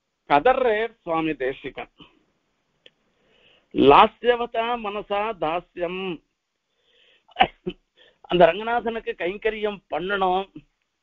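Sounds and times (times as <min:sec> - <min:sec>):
man speaking: 0:00.3 - 0:02.1, 0:03.8 - 0:06.2, 0:07.3 - 0:07.7, 0:08.3 - 0:10.6.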